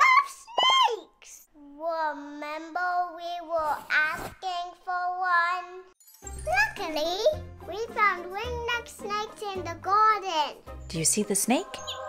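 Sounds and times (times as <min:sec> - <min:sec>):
children's music jingle: 0:04.8 - 0:12.0.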